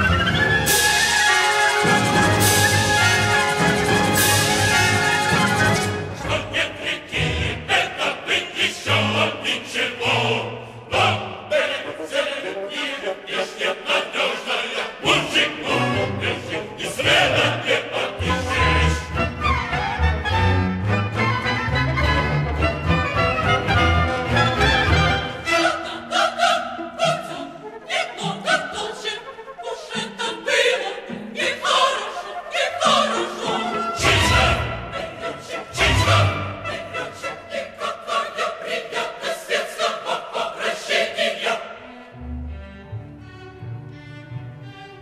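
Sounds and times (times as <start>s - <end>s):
orchestra playing: 0.0s - 7.6s, 18.2s - 37.9s
opera chorus singing: 0.0s - 42.8s.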